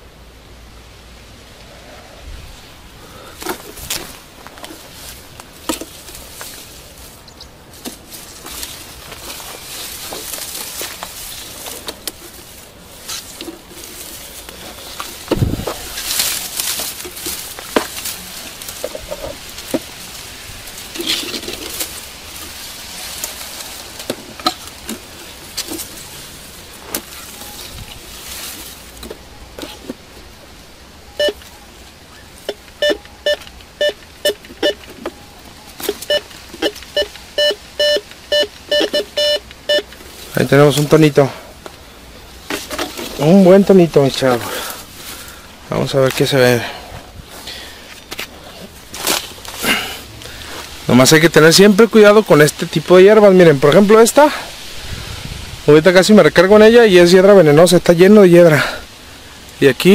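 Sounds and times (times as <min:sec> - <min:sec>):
rustling steps through tall grass: 0:02.4 - 0:55.8
metal detector short beeps: 0:31.1 - 0:31.7, 0:32.5 - 0:39.9.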